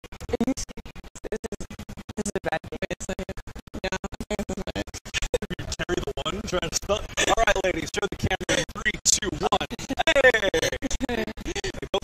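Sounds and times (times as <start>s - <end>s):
record-scratch stutter effect: 0.0s - 12.0s
voices and laughter: 5.2s - 12.0s.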